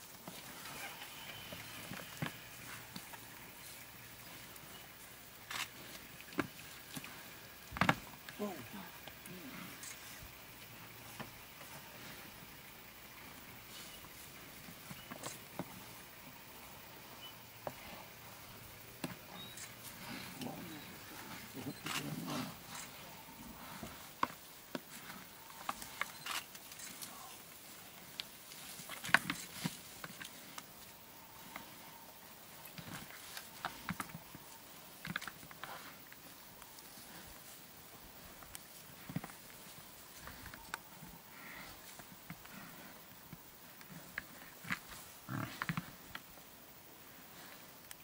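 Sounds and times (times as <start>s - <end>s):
buffalo grunting: 0.2s - 24.2s, 40.2s - 46.1s.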